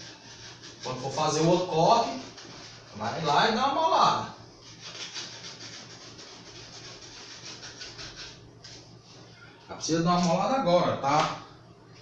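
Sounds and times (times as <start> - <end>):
knife sawing through foam: 0.0 - 3.4, 4.7 - 8.4.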